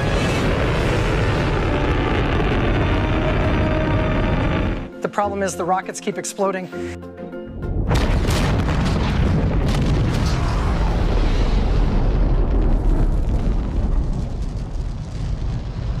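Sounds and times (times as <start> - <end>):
rocket explosion blast: 0.0 - 4.9, 7.7 - 16.0
deep rumble: 0.0 - 5.0, 7.5 - 16.0.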